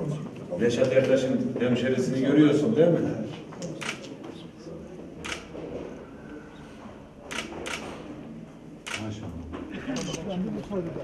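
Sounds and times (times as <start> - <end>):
low murmur of voices: 0.0 - 11.0
camera shutter clicks: 5.2 - 5.5, 7.3 - 8.0, 8.8 - 9.0.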